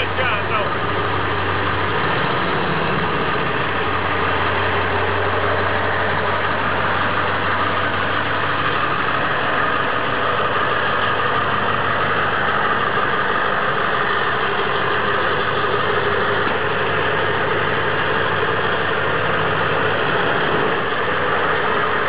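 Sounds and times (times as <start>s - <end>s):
pickup truck engine idling: 0.0s - 22.0s.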